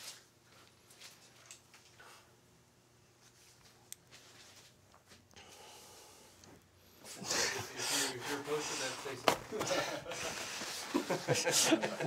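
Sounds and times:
breathing: 5.4 - 9.1.

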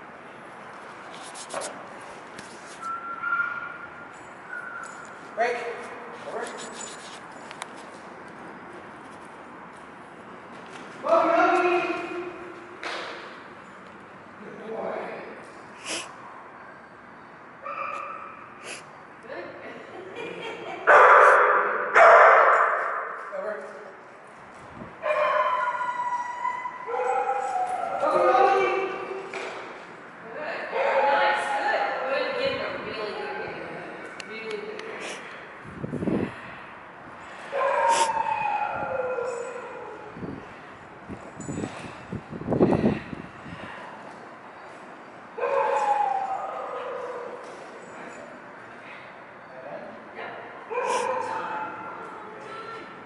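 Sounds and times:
dog barking: 20.9 - 23.0, 25.0 - 25.9, 37.6 - 38.2, 50.7 - 51.9
faint dog yips: 37.6 - 40.0, 50.7 - 51.3.

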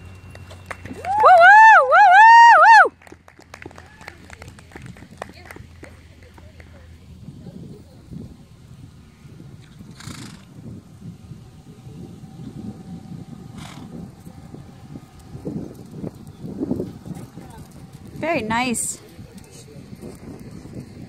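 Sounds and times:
horse hooves on sand: 13.9 - 21.0.

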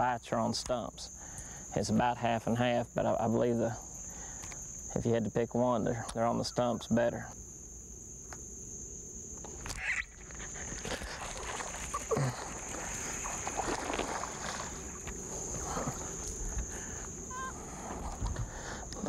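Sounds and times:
high-pitched insect drone: 1.0 - 19.0
water splashing: 9.8 - 16.4
rustling and knocking on boat: 17.8 - 18.6.

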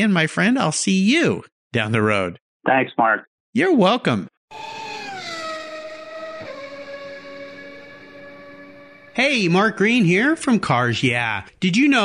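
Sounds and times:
car engine note falling: 4.6 - 9.9.

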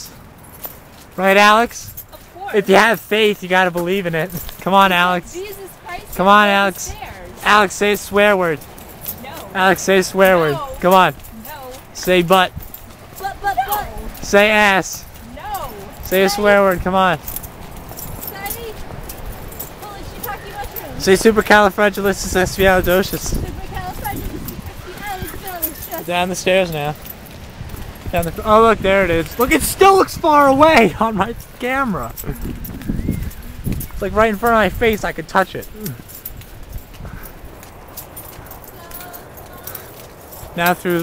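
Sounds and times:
clothes and shrubs rustling: 0.0 - 41.0
footsteps on dirt trail: 0.0 - 41.0.

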